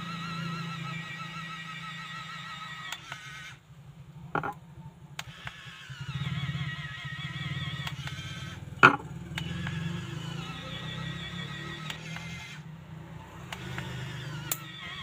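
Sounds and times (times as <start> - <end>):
motor hum with wavering whine: 0.0 - 15.0
sharp clicks: 2.8 - 3.6, 5.2 - 6.4, 7.6 - 10.8, 11.5 - 12.6, 13.4 - 15.0.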